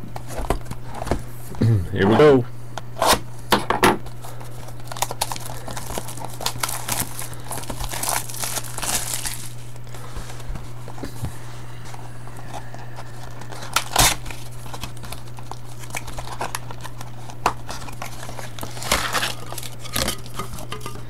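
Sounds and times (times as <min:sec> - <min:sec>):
plastic wrapping crinkling and tearing: 0:04.0 - 0:10.4, 0:12.4 - 0:21.0.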